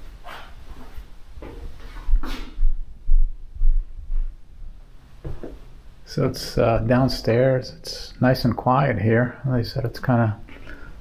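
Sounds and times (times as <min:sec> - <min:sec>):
footsteps thudding through camera: 0:05.2 - 0:05.7.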